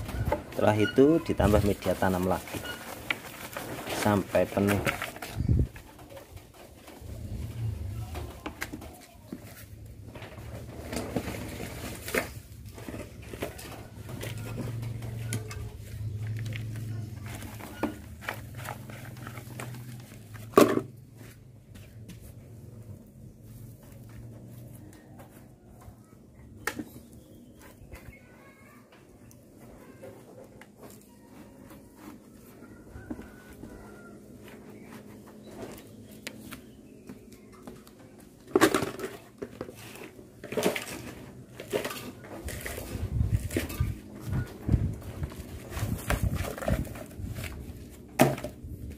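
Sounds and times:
soil rustling and patting: 0.0s - 5.9s.

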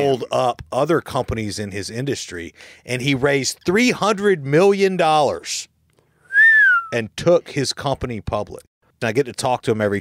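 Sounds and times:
person whistling: 6.3s - 7.0s.

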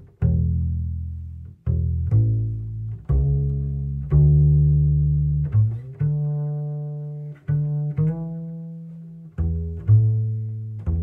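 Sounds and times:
double bass plucked notes: 0.0s - 11.0s.

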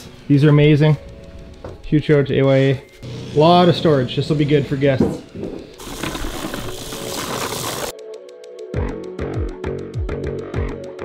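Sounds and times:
spreader wheeled over dirt: 5.8s - 7.9s.

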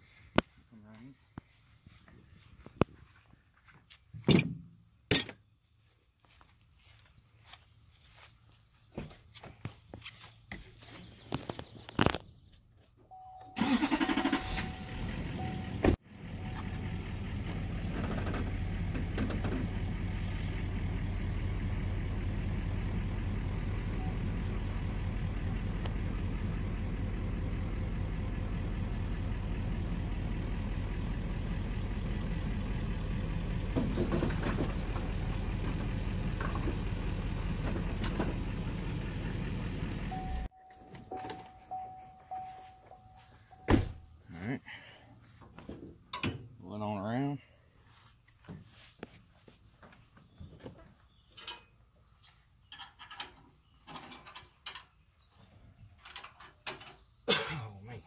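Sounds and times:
pickup truck engine running: 13.6s - 40.5s.

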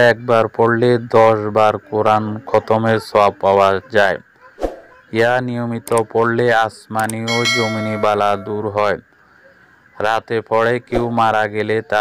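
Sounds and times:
man speaking: 7.0s - 8.9s
bright bell-like chime: 7.3s - 8.6s.

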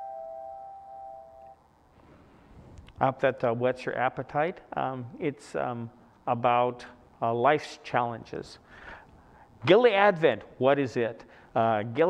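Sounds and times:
held keyboard note: 0.0s - 1.6s.

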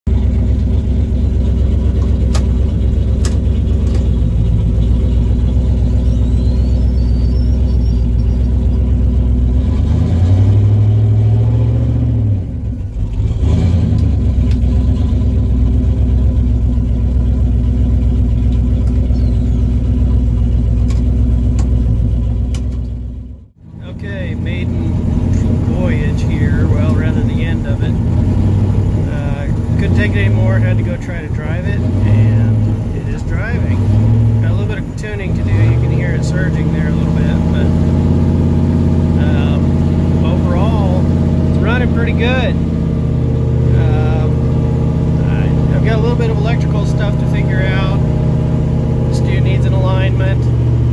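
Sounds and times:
car engine accelerating: 0.1s - 50.9s.

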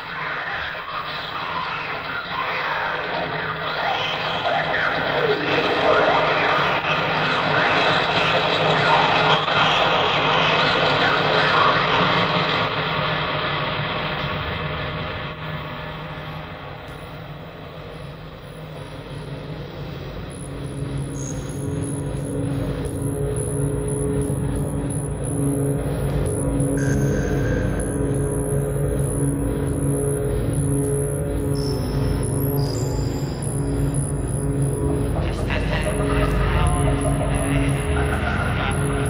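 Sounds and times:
industrial electronic music: 0.0s - 39.0s.

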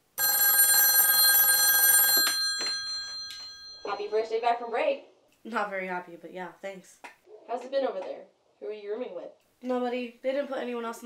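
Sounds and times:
desk telephone ringing: 0.2s - 4.1s.

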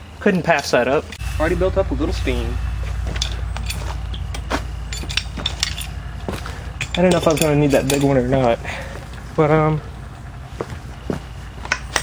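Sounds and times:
steady low rumble: 1.1s - 12.0s
tools and metal pipe fittings clicking: 4.9s - 8.2s, 11.6s - 12.0s.

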